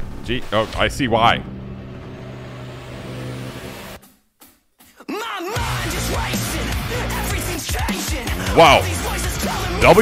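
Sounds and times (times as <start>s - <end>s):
low electronic drone: 1.3s - 4.0s.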